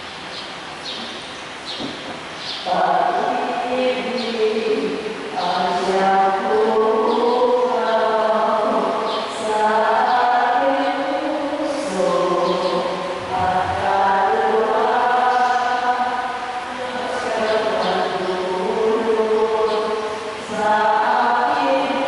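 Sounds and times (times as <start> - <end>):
voices singing a hymn: 2.6 - 22.0.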